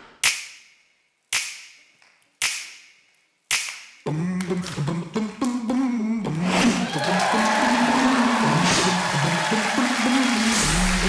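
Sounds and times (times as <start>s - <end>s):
sharp snaps: 0.0s - 5.6s.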